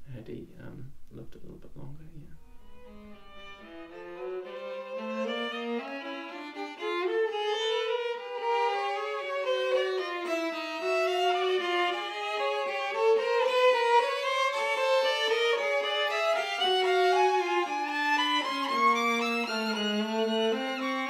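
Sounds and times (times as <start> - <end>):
two violins playing: 2.4 - 21.0.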